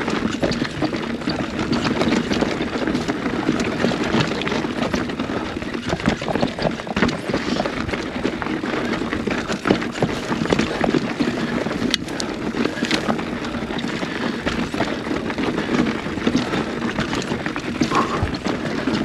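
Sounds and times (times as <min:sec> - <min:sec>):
bike tyres crunching on gravel: 0:00.0 - 0:19.0
stones and bike rattling: 0:00.0 - 0:19.0.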